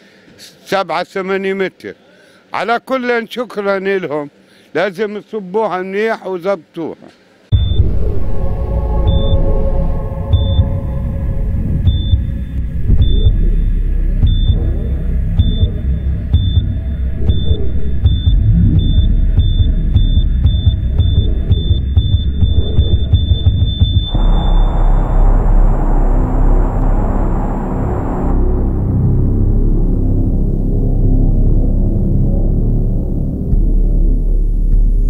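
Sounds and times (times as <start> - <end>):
high heart monitor beeps: 7.5 - 8.4, 9.0 - 25.6
deep rumbling electronic music: 7.5 - 35.0.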